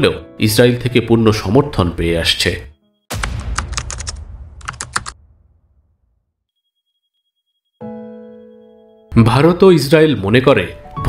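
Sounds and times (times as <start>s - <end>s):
sudden hit with low rumble: 3.1s - 6.2s
keystroke clicks: 3.2s - 5.2s.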